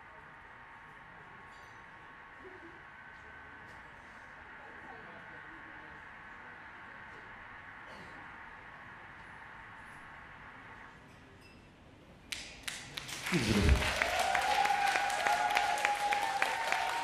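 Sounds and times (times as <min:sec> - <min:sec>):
people clapping: 0:12.3 - 0:17.0.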